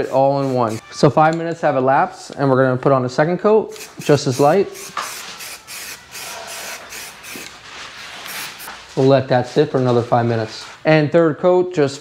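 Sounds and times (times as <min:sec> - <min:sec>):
aerosol spray can hissing: 0:00.0 - 0:00.8, 0:03.7 - 0:07.5, 0:08.2 - 0:08.7.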